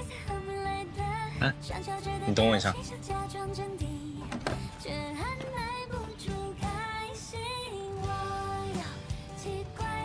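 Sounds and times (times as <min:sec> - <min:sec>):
pop song with singer: 0:00.0 - 0:10.0.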